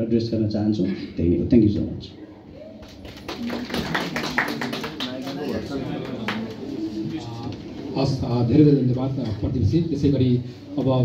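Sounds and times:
people clapping: 2.8s - 6.9s.

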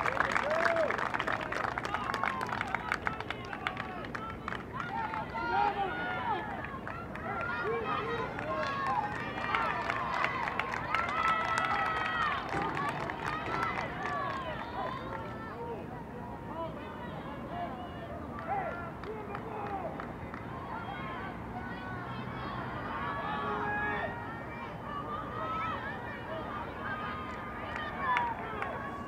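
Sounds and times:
players and spectators shouting: 1.9s - 29.0s.

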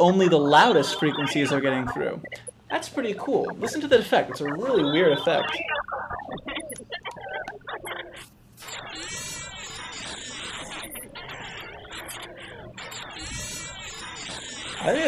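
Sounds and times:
man's voice: 0.0s - 5.6s
bubbly spectral gated loop: 0.0s - 15.0s.

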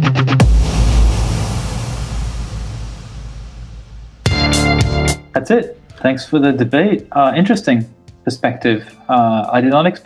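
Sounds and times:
low boom with wash of noise: 0.4s - 4.9s.

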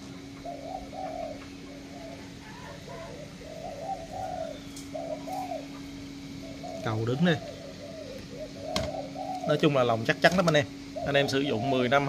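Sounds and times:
doves cooing: 0.0s - 12.0s
steady low hum: 0.0s - 12.0s.

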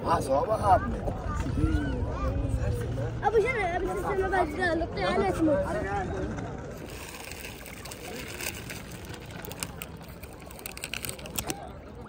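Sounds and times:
faint distant voices: 0.0s - 12.0s
steady background noise: 0.0s - 12.0s.

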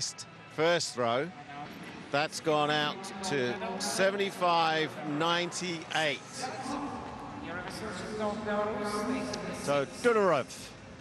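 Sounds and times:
stadium background sound: 0.0s - 11.0s.

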